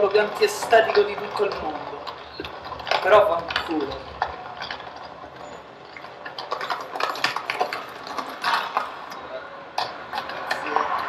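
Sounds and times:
light city traffic: 0.0s - 11.0s
wheeled suitcase rattling on stone: 0.0s - 11.0s.

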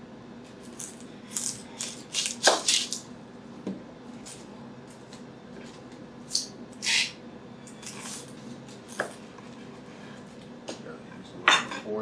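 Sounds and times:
knife slicing through onion: 0.6s - 3.0s, 6.3s - 7.2s.

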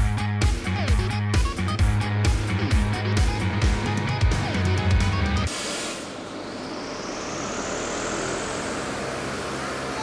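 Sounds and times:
large fan whirring: 5.4s - 10.0s.

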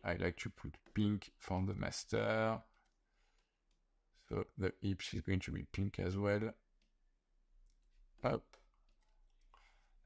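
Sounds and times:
person speaking: 0.0s - 3.0s, 3.7s - 9.1s.

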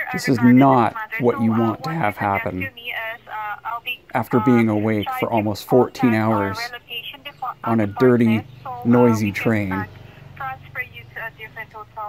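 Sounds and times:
man talking on a phone call: 0.0s - 10.5s
faint outdoor background noise: 0.0s - 12.0s
narration: 0.0s - 12.0s.

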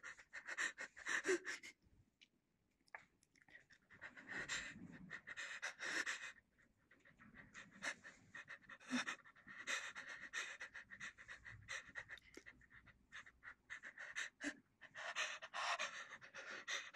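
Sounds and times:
person breathing heavily: 7.2s - 16.9s.

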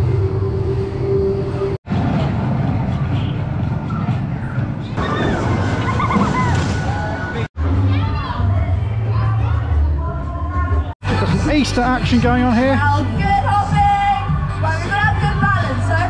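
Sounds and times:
rush of outdoor noise: 0.0s - 11.3s.

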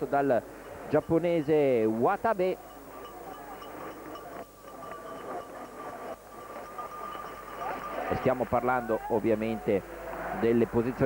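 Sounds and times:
thin steady tone: 0.0s - 10.2s
outdoor noise: 0.0s - 11.0s.

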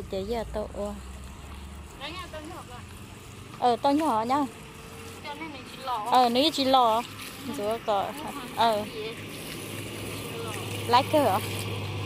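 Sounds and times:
hose water running onto glass: 0.0s - 12.0s.

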